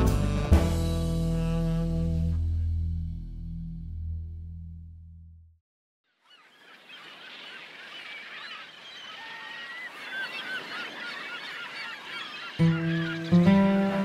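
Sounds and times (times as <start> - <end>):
music: 0.0 - 5.4, 12.6 - 14.0
gulls calling: 6.1 - 14.0.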